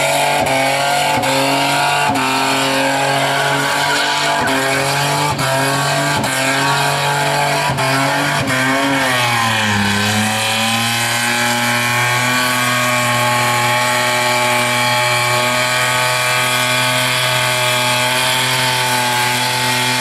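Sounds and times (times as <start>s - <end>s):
car engine at high revs: 0.0s - 20.0s.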